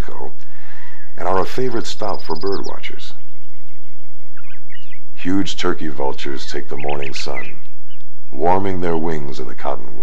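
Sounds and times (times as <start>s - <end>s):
bird chirping: 0.0s - 10.0s
steady low hum: 0.0s - 10.0s.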